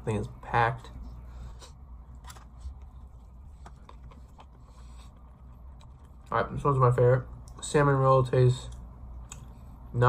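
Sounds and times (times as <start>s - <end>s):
steady low hum: 0.0s - 10.0s
person chewing food: 1.5s - 6.3s
mouth clicks and soft crunches: 1.6s - 6.4s.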